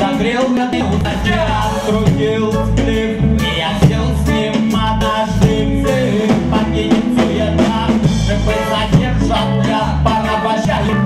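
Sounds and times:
person singing into a microphone: 0:00.0 - 0:11.0
reggae band playing: 0:00.0 - 0:11.0.

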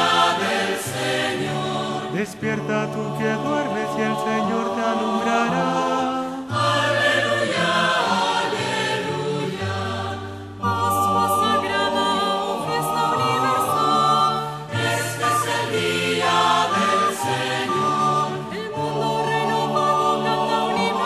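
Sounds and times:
choir singing chant in harmony: 0:00.0 - 0:21.0.

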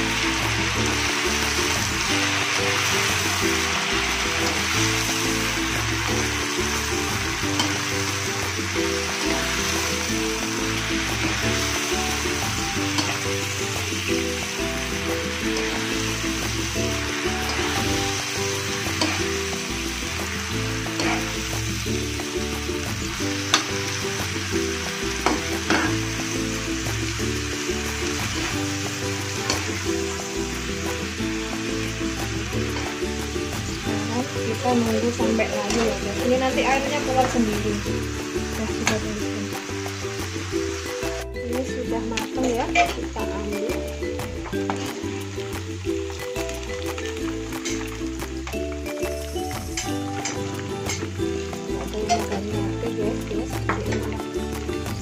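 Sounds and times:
background music: 0:00.0 - 0:55.0
greens sizzling in a wok: 0:00.0 - 0:55.0.

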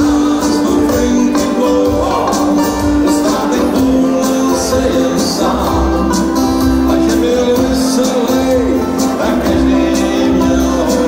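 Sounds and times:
acoustic guitar: 0:00.0 - 0:11.0
banjo: 0:00.0 - 0:11.0
mandolin: 0:00.0 - 0:11.0.

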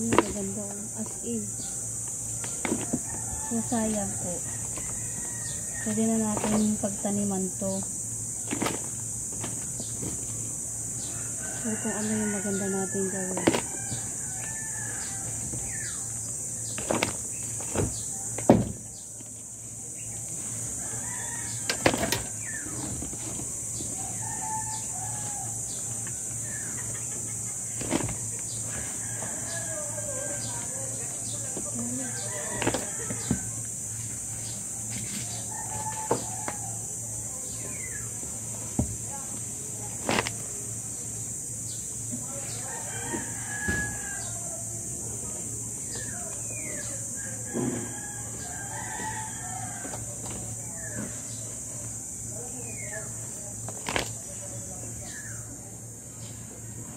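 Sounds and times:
rooster crowing: 0:02.6 - 0:06.4, 0:11.0 - 0:16.0, 0:20.7 - 0:22.8, 0:24.0 - 0:27.2, 0:28.2 - 0:31.0, 0:31.7 - 0:33.7, 0:35.2 - 0:37.0, 0:42.4 - 0:44.8, 0:47.2 - 0:50.8
leaves and soil dropped into bin: 0:39.8 - 0:40.5, 0:53.7 - 0:54.3.

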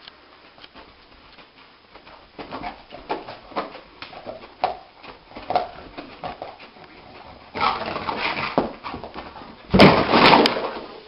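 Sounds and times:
dog thumping into wall: 0:09.7 - 0:10.8.

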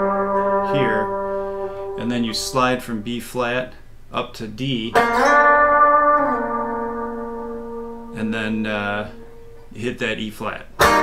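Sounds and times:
electric guitar sliding lead note: 0:00.0 - 0:03.1, 0:04.9 - 0:09.8, 0:10.8 - 0:11.0.

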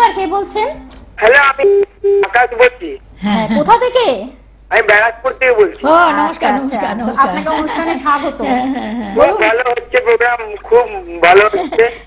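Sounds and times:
voice on telephone call: 0:01.2 - 0:03.0, 0:09.2 - 0:12.0
brief steady beeps: 0:01.6 - 0:02.3.

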